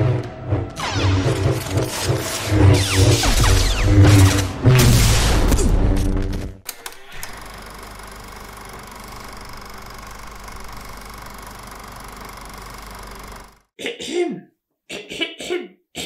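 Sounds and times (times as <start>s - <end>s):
film score and effects: 0.0s - 7.4s
film projector whirring: 6.7s - 13.7s.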